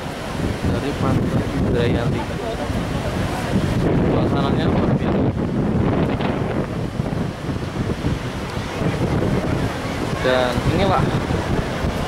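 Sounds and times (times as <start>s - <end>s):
ocean surf breaking: 0.0s - 12.0s
wind buffeting microphone: 0.0s - 12.0s.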